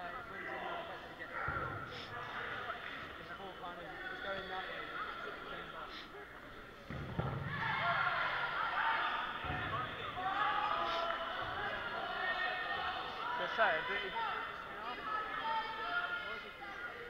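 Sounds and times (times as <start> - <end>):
chatter of many players: 0.0 - 17.0
dodgeballs bouncing on floor: 6.9 - 7.6.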